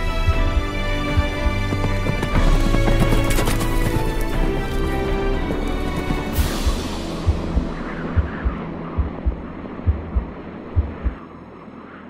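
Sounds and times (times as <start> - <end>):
low hum: 3.9 - 12.0
heartbeat-like double thump: 6.4 - 11.2.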